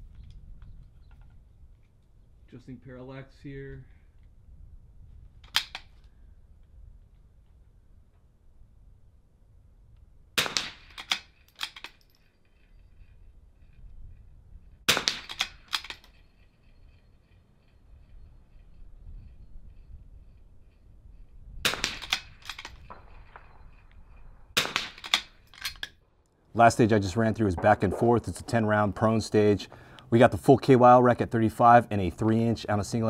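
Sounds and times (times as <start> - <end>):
rifle shots: 10.4 - 11.8, 14.9 - 16.0, 21.6 - 23.8, 24.5 - 25.8, 26.9 - 29.5
metallic clicks and clanks: 10.6 - 13.2, 14.9 - 18.2, 21.7 - 24.0, 24.7 - 26.0.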